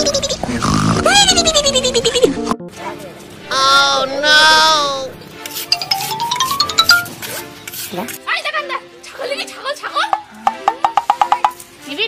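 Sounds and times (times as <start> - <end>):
music: 1.0 - 12.0.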